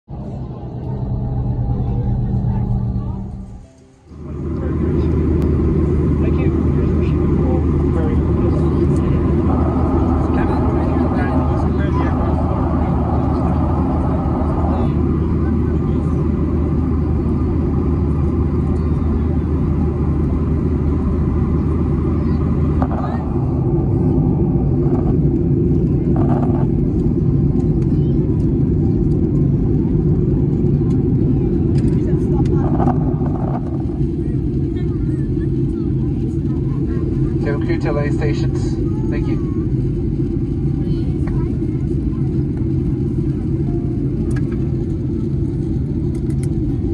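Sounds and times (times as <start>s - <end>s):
airliner engines droning: 0.0s - 46.9s
rushing air: 0.1s - 6.2s, 7.7s - 15.7s.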